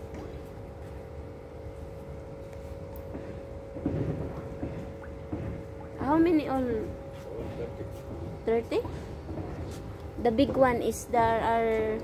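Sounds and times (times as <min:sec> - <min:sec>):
pond pump humming: 0:00.0 - 0:12.0.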